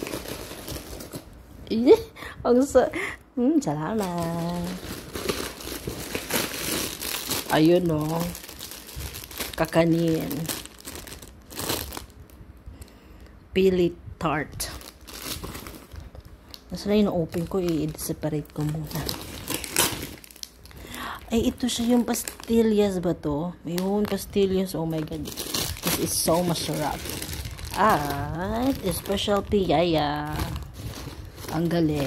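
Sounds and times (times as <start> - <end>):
plastic packaging crinkling: 0.0 - 1.4, 3.9 - 12.4, 14.6 - 23.0, 23.6 - 32.0.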